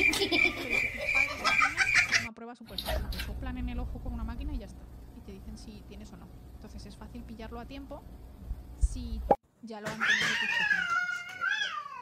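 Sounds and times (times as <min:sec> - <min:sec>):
cat yowling: 0:10.0 - 0:12.0.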